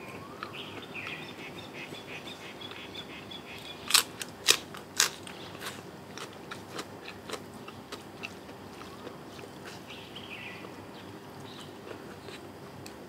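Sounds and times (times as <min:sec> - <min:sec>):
birds chirping: 0:00.0 - 0:04.0, 0:08.8 - 0:12.4
loud crunches of chewing: 0:03.5 - 0:13.0.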